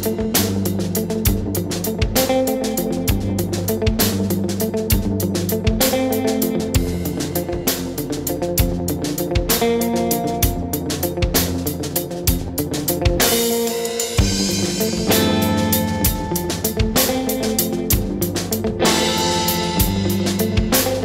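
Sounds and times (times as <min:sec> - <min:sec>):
drum kit beat: 0:00.0 - 0:21.0
guitar: 0:00.0 - 0:21.0.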